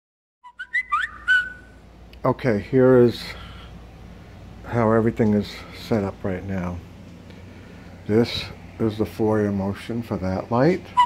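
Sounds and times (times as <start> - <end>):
smartphone electronic chirps: 0.5 - 1.7.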